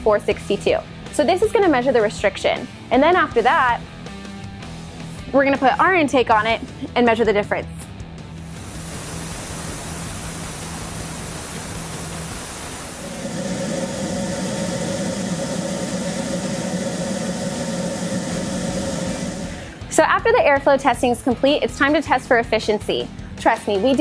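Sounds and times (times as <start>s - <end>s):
air rushing through intake: 8.3s - 19.8s.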